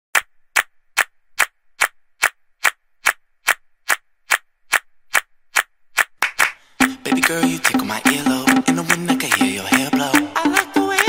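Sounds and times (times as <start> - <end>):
sharp percussive clicks: 0.1 - 11.0.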